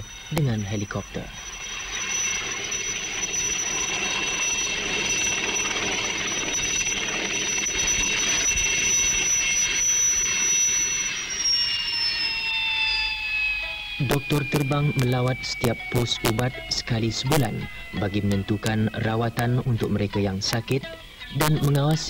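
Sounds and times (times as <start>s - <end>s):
helicopter rotor noise: 0.0s - 22.0s
helicopter turbine whine: 0.0s - 22.0s.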